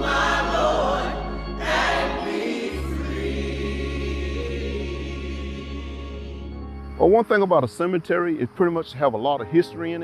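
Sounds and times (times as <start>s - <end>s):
choir singing held notes: 0.0s - 6.6s
steady low tone: 0.0s - 8.6s.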